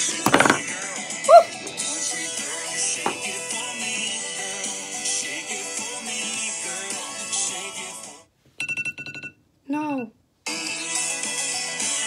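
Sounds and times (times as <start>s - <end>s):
music: 0.0s - 8.3s, 10.4s - 12.0s.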